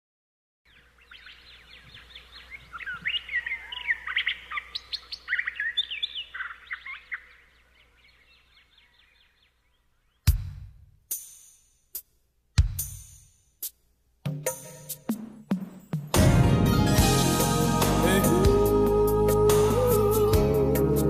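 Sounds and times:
small birds chirping: 0:00.7 - 0:10.5.

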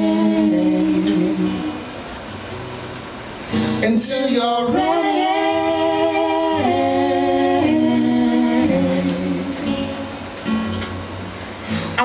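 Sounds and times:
voices singing in harmony: 0:00.0 - 0:02.0, 0:03.8 - 0:10.3.

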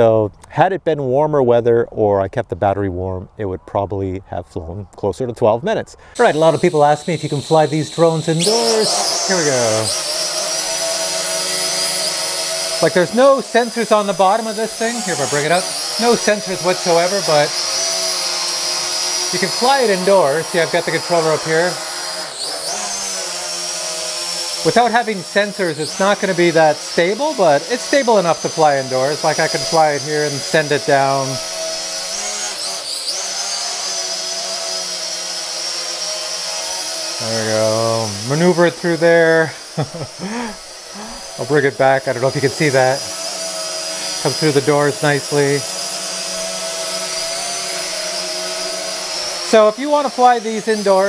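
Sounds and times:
high hiss: 0:06.1 - 0:10.0, 0:39.2 - 0:41.7
drone propellers buzzing: 0:06.1 - 0:51.0.

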